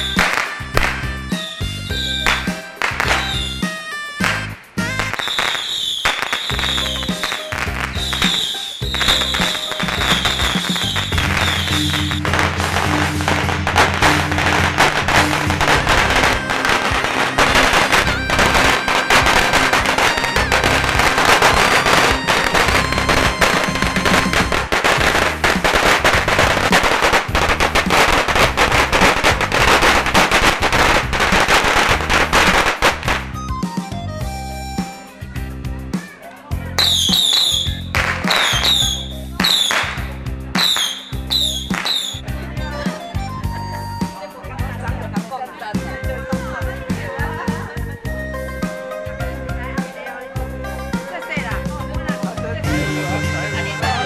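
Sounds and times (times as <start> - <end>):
firecrackers crackling: 0.0 - 34.1, 35.9 - 45.7
music: 0.0 - 54.0.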